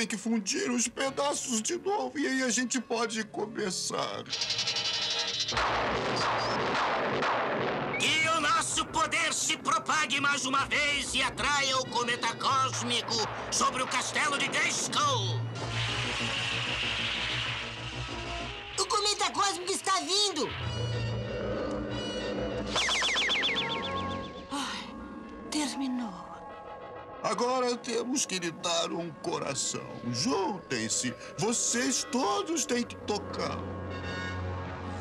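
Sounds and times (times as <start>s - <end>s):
background music: 0.0s - 35.0s
crackling magic rumble: 5.4s - 10.1s, 12.8s - 20.6s
falling electronic warble: 22.6s - 24.6s
sweeping swoops: 22.7s - 24.5s.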